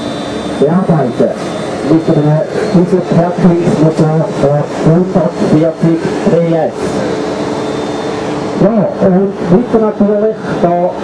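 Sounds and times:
man speaking: 0.6 - 7.2, 8.6 - 11.0.

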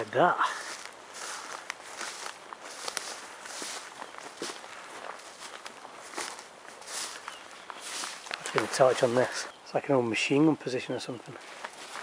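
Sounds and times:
footsteps on rough ground: 0.0 - 9.6, 11.0 - 12.0.

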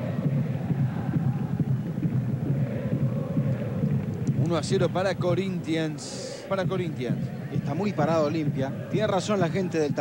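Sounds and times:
crowd drumming a fast beat: 0.0 - 10.0
football crowd chanting: 0.0 - 10.0.

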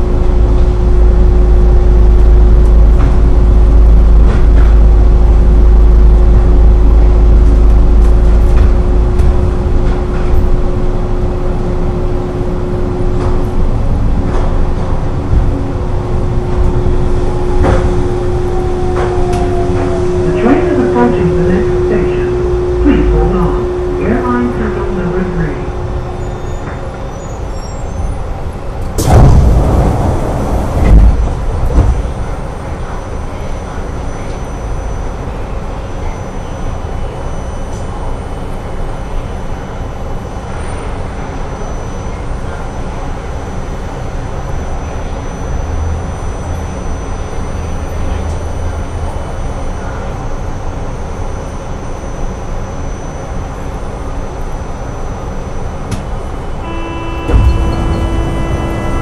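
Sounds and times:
loud low noise: 0.0 - 34.8, 52.9 - 59.0
tram car humming: 0.0 - 59.0
low thumps: 29.0 - 32.4, 57.2 - 59.0.

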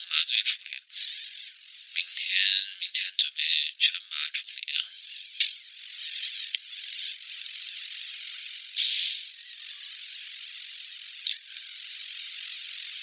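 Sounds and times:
steady high hiss: 0.0 - 13.0.

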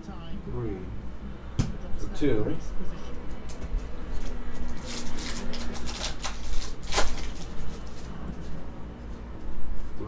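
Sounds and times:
cards being handled: 3.5 - 8.6
wrapper crinkling and tearing: 4.5 - 8.5.

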